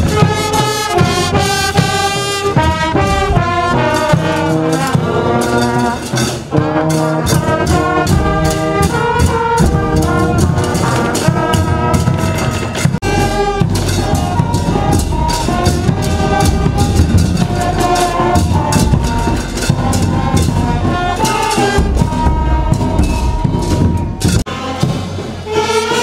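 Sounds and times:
brass band melody: 0.0s - 26.0s
percussion beat: 0.0s - 26.0s.

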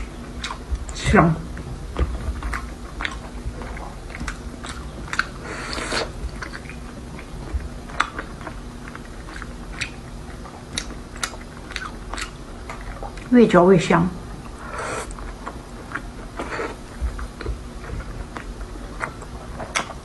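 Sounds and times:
chewing with mouth closed: 0.3s - 1.0s, 2.0s - 13.3s, 14.4s - 20.0s.

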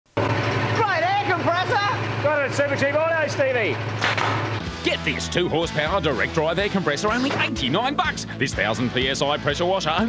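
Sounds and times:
air compressor humming: 0.1s - 8.5s.

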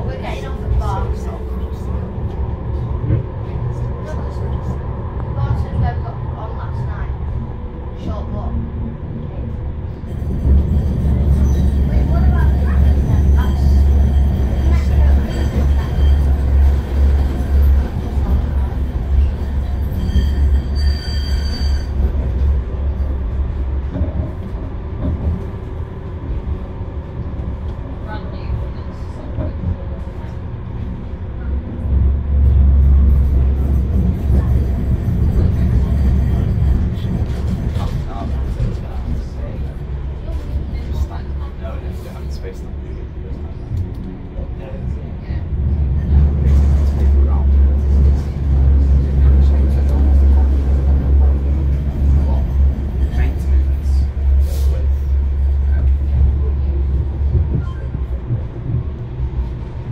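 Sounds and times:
tram rumbling on rails: 0.0s - 59.9s.

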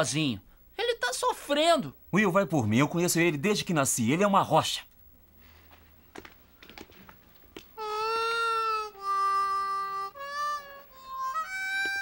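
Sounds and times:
harmonica long bending note: 7.8s - 12.0s.

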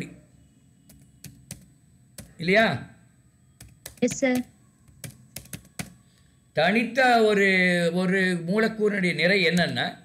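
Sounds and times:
faint keyboard typing: 0.8s - 2.6s, 3.5s - 6.4s, 9.5s - 9.8s.

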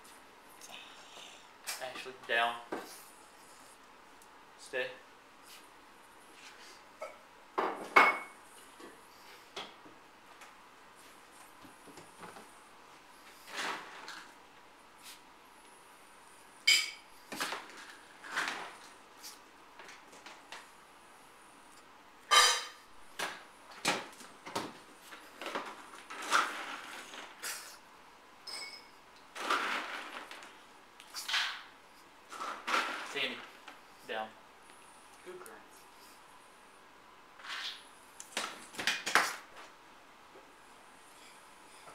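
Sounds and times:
dishes and metal bowls clattering: 22.3s - 22.8s, 28.4s - 30.0s
metallic ring: 28.4s - 28.9s.

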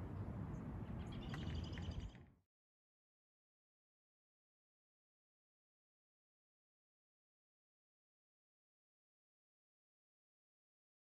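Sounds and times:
bird chirping: 0.5s - 2.3s.

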